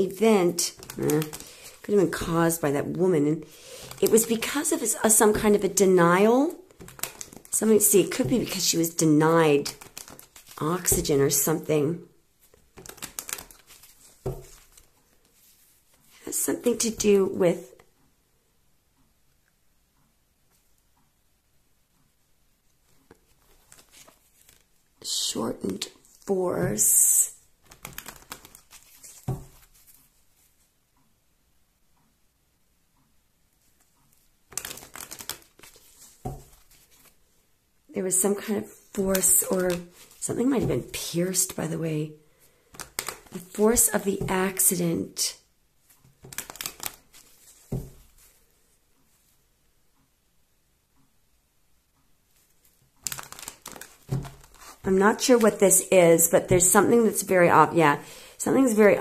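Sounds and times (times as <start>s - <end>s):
cards shuffled by hand: 0.5s - 2.6s, 3.7s - 5.7s, 6.7s - 11.7s, 12.4s - 16.2s, 22.9s - 24.8s, 27.6s - 30.6s, 33.7s - 37.2s, 38.8s - 41.7s, 42.6s - 44.8s, 45.8s - 48.5s, 52.4s - 55.8s.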